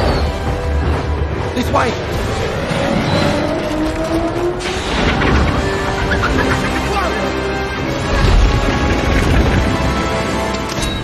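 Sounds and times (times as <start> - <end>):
huge wheels rumbling over ground: 0.0 - 10.7
dramatic music: 0.0 - 11.0.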